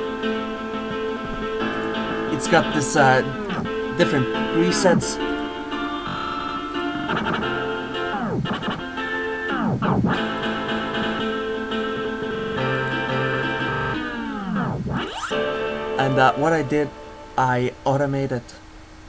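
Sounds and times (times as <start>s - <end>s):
synth chord pattern with pitch dives: 0.0s - 17.9s.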